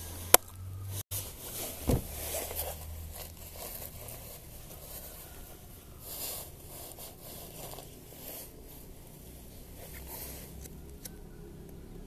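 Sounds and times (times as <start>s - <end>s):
padded jacket rustling: 1.1s - 5.3s.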